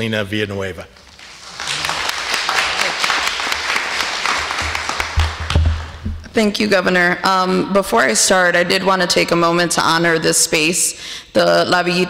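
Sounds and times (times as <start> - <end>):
audience applause: 1.1 - 6.1.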